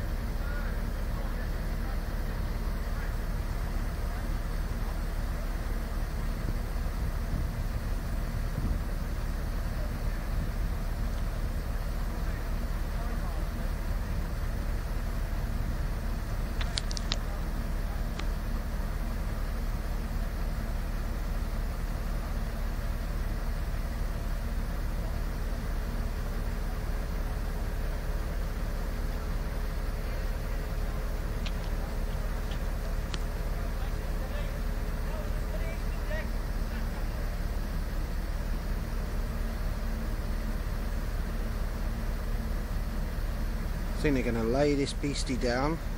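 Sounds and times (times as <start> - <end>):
heavy machinery engine drone: 0.0 - 45.9.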